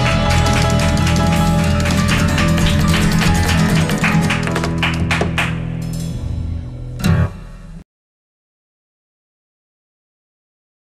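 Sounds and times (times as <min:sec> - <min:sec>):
strummed acoustic guitars: 0:00.0 - 0:06.2
drums: 0:00.0 - 0:07.8.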